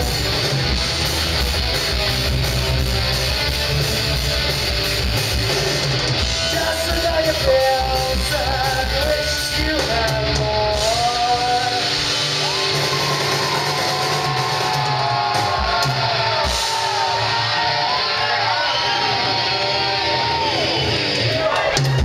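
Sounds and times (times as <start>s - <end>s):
distorted electric guitars: 0.0s - 22.0s
drums: 0.0s - 22.0s
shouted vocals: 10.8s - 22.0s.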